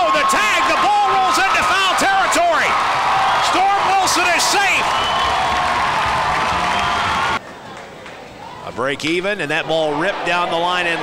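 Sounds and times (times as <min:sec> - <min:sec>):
crowd cheering and applauding: 0:00.0 - 0:08.2.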